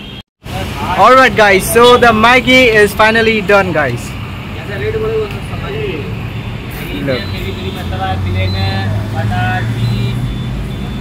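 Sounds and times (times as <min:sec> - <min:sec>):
low engine drone of traffic: 0:00.0 - 0:11.0
voices chattering: 0:00.6 - 0:11.0.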